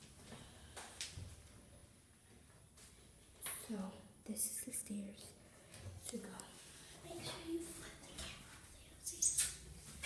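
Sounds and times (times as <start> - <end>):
person whispering: 6.0 - 9.6.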